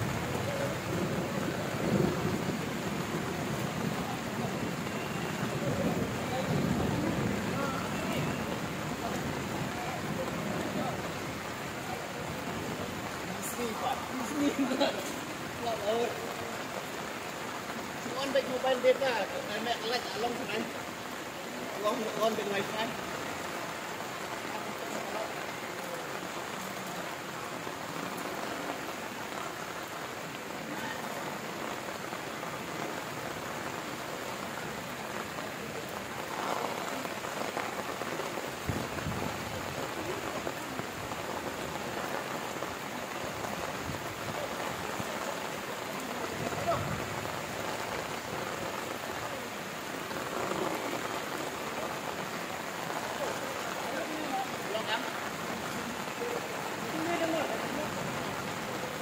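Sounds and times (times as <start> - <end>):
heavy rain falling: 0.0 - 59.0.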